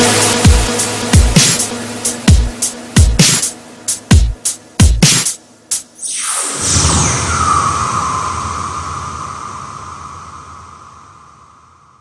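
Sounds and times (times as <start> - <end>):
electronic noise wash: 0.0 - 5.1, 5.9 - 12.0
held high electronic tone: 6.0 - 11.9.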